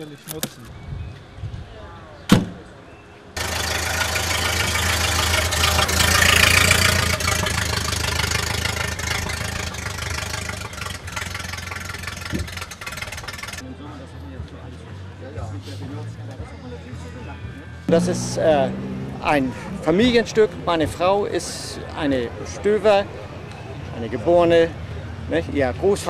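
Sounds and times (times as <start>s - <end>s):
car engine idling: 3.4s - 13.6s, 17.9s - 22.3s.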